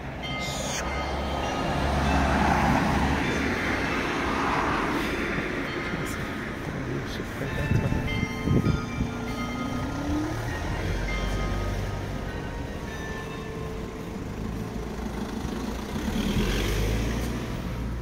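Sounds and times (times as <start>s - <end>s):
car passing: 0.0s - 18.0s
vehicle engine revving: 14.8s - 18.0s.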